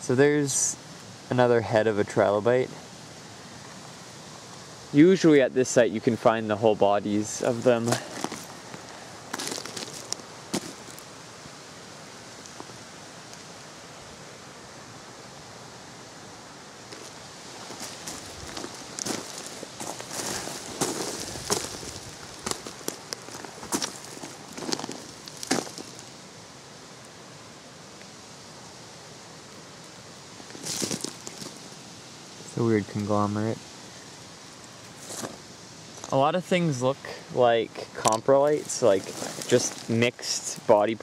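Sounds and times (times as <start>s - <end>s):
steady background hiss: 0.0s - 41.0s
footsteps crunching on scree: 7.3s - 11.2s, 16.9s - 26.2s, 30.5s - 31.7s, 38.5s - 40.0s.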